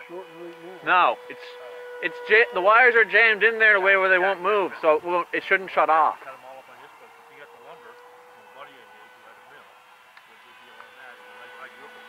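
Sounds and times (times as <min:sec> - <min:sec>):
high-pitched hum: 0:00.0 - 0:12.0.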